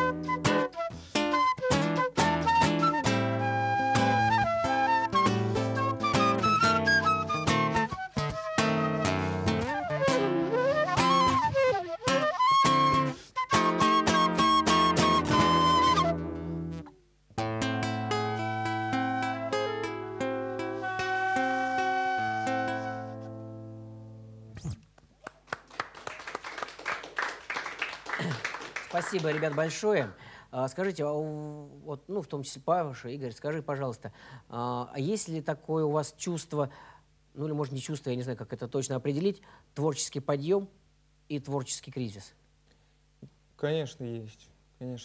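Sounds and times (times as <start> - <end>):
flute: 0.0 - 16.9, 18.0 - 23.6
acoustic guitar: 0.0 - 25.0.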